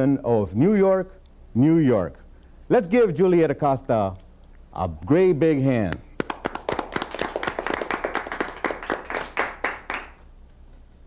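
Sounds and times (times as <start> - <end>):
hands clapping: 5.9 - 11.0.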